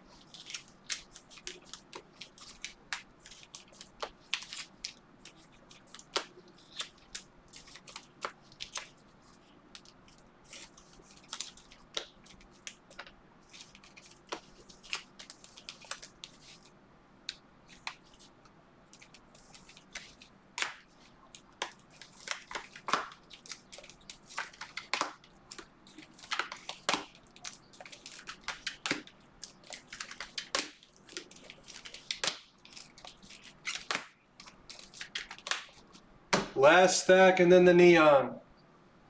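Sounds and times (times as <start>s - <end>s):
trading cards flicking: 18.9s - 36.6s.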